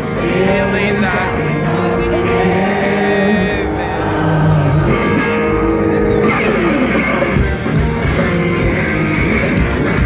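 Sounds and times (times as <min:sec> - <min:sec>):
electric guitar chords: 0:00.0 - 0:10.0
live rock band: 0:00.0 - 0:10.0.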